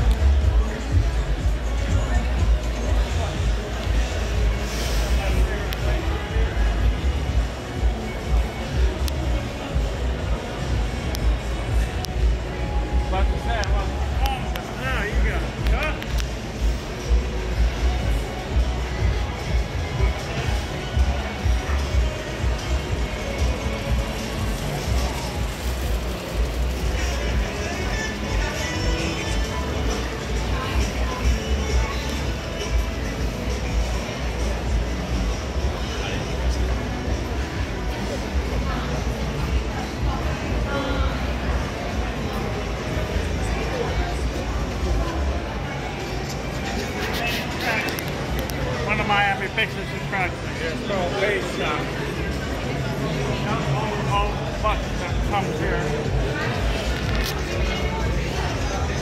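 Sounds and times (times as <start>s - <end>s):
chatter of shoppers: 0.0s - 59.0s
music playing: 0.0s - 59.0s.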